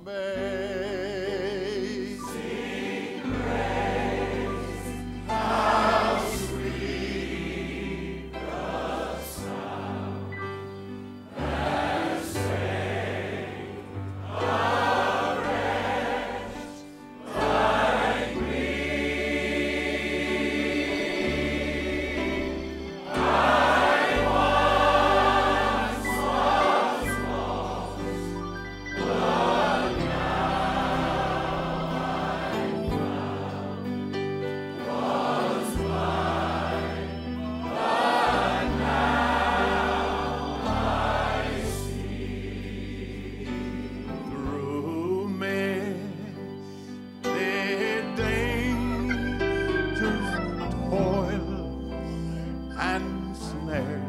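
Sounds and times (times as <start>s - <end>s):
crowd singing a hymn: 0.0s - 54.0s
instrumental accompaniment with bass notes: 0.0s - 54.0s.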